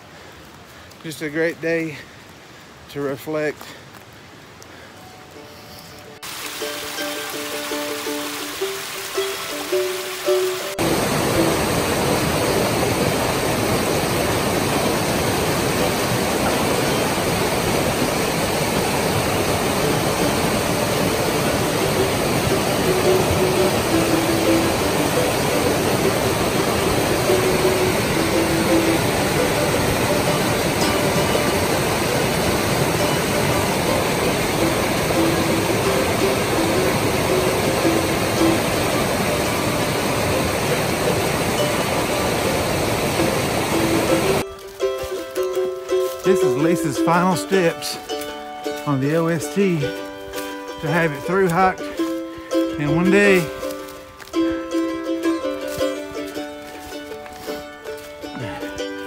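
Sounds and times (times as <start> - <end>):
creek rushing over boulders: 0.0 - 59.0
faint held musical notes: 4.8 - 59.0.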